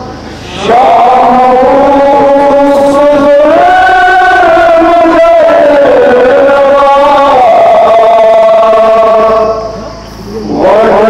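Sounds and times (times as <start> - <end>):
man singing a lament: 0.0 - 11.0.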